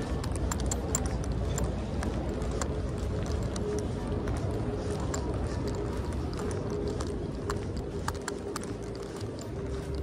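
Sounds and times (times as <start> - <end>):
footsteps on pavement: 0.0 - 10.0
low outdoor rumble: 0.0 - 10.0.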